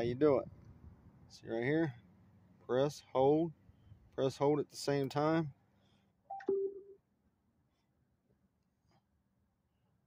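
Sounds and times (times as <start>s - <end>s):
button click: 6.3s - 6.9s
two-note electronic prompt tone: 6.3s - 7.0s.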